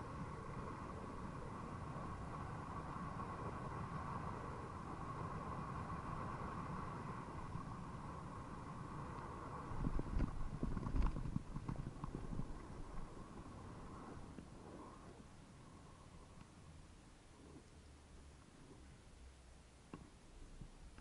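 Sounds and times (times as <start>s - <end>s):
bike rolling on pavement: 0.0s - 15.6s
wind on microphone: 0.0s - 16.4s
steady hum: 0.0s - 21.0s
bike knocking and rattling: 9.8s - 13.1s.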